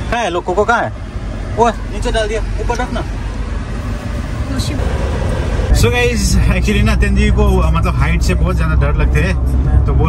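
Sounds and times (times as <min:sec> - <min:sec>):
road and engine rumble in car cabin: 0:00.0 - 0:10.0.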